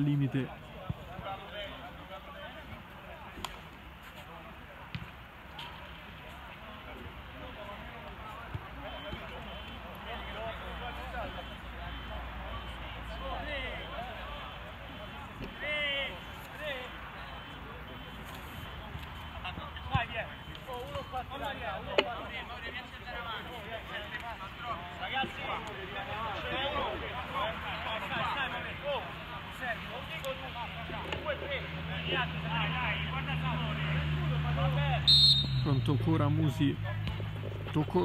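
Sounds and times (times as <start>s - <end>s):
distant players shouting: 24.8s - 35.9s.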